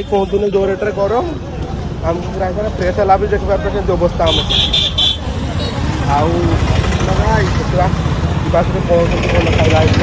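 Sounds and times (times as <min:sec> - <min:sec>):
low rumble of traffic: 0:00.0 - 0:10.0
people talking close by: 0:00.0 - 0:10.0.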